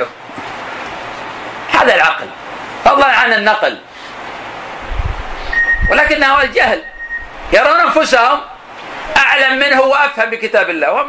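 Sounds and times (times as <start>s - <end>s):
recording hiss: 0.0s - 11.0s
thin steady whistle: 5.5s - 5.9s, 6.8s - 7.4s
man speaking: 5.9s - 6.9s, 7.5s - 11.0s.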